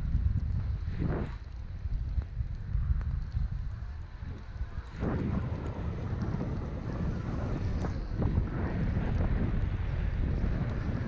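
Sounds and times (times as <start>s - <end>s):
wind rushing over microphone: 0.0s - 11.0s
skis sliding over packed snow: 0.1s - 11.0s.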